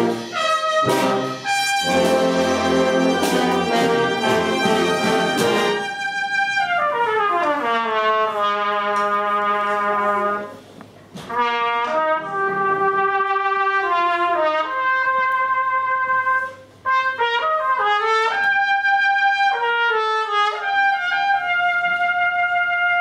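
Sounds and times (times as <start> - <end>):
percussion hits: 0.0 - 6.8
brass band playing: 0.0 - 23.0.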